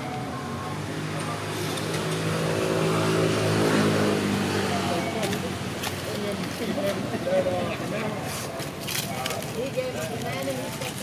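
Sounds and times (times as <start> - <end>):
vehicle engine passing by: 0.0 - 8.4.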